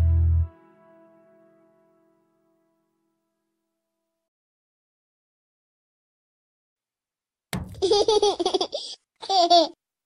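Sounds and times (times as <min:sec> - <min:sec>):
young child laughing: 0:07.8 - 0:09.8.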